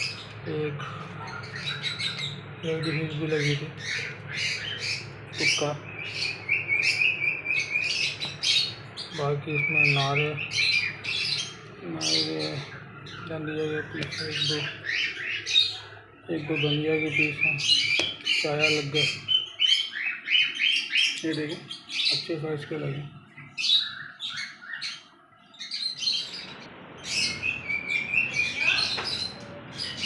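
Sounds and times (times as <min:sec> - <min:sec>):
birds chirping: 0:00.0 - 0:30.0.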